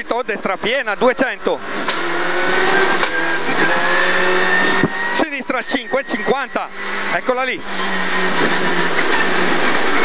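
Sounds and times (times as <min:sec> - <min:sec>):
car engine at high revs: 0:00.0 - 0:10.0
gear shift pitch change: 0:00.0 - 0:10.0.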